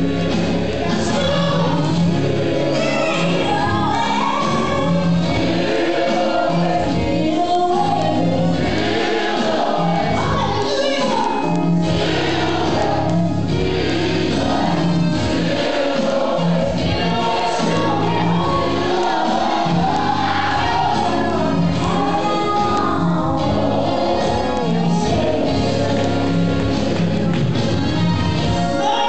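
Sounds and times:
steady bass line: 0:00.0 - 0:28.9
gospel choir singing: 0:00.0 - 0:29.0.

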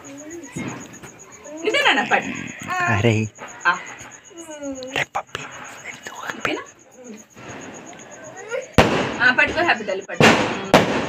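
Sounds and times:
low scattered voices: 0:00.0 - 0:11.0
firecracker bang: 0:08.8 - 0:11.0.

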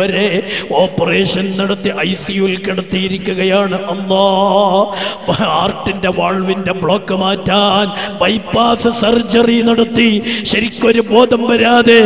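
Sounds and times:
man chanting recitation: 0:00.0 - 0:12.0.

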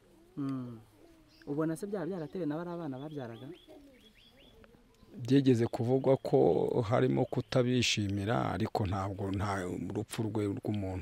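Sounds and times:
man speaking: 0:05.2 - 0:11.0.

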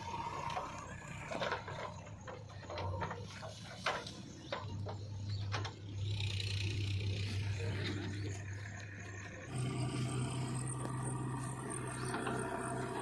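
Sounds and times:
diesel engines humming: 0:00.0 - 0:13.0.

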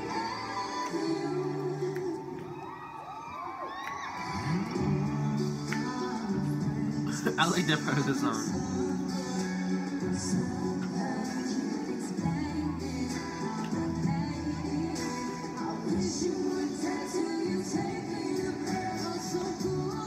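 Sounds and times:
female vocal group singing live: 0:00.0 - 0:02.8, 0:04.1 - 0:20.0.

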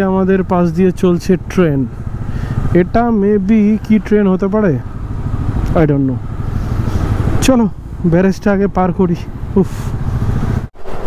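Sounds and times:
motorcycle engine running: 0:00.0 - 0:10.7.

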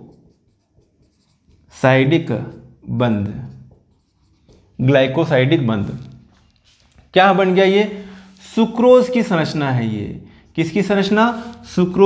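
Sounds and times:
marker writing on whiteboard: 0:00.0 - 0:07.6
man talking: 0:01.7 - 0:03.6, 0:04.8 - 0:06.2, 0:07.1 - 0:12.0.

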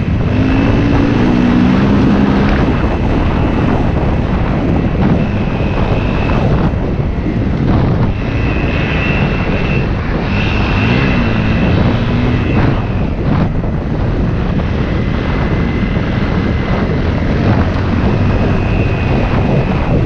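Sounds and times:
dirt bike engine running: 0:00.0 - 0:20.0.

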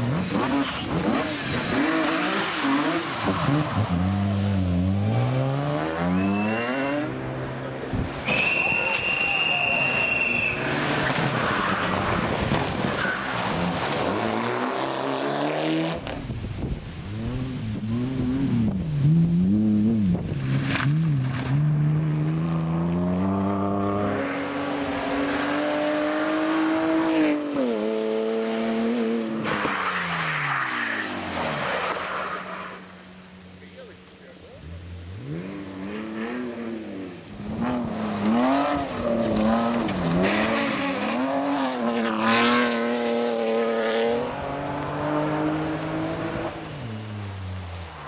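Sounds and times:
rally car engines revving past: 0:00.0 - 0:48.0.

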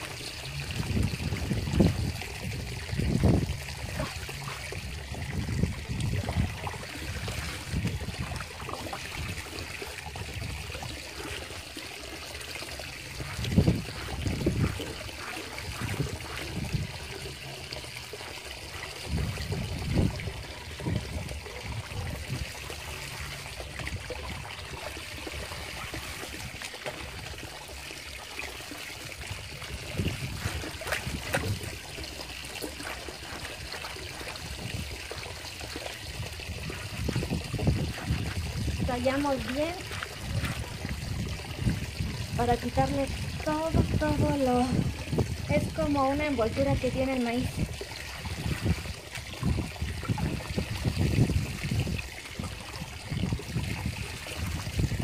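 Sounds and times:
bumps and splashes: 0:00.0 - 0:55.0
water trickling and splashing: 0:00.0 - 0:55.0.

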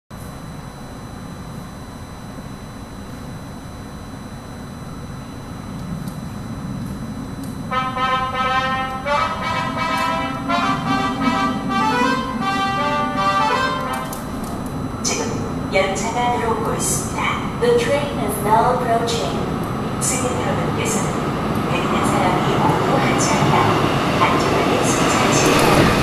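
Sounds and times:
subway train rumbling in tunnel: 0:00.1 - 0:26.0
station approach melody: 0:07.7 - 0:14.5.

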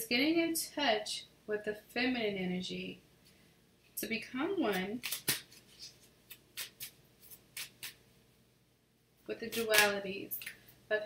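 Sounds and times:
cards clicking and rustling: 0:05.0 - 0:08.0, 0:09.5 - 0:10.5.

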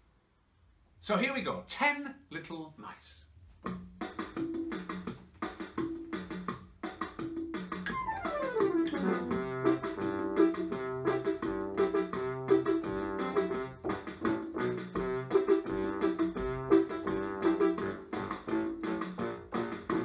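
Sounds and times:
electronic keyboard tune with beat: 0:04.2 - 0:20.0.

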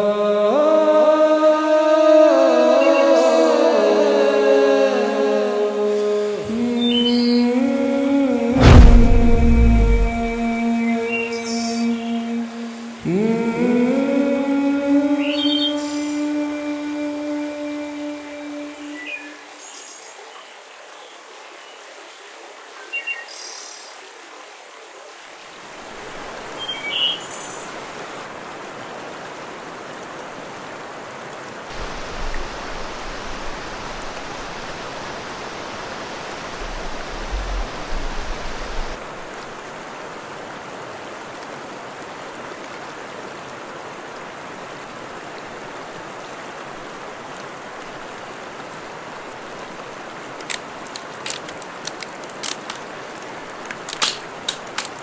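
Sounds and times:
river water flowing: 0:00.0 - 0:55.0.

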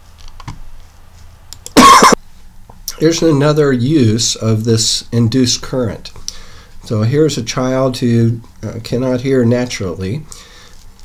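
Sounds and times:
person coughing: 0:01.8 - 0:02.2.

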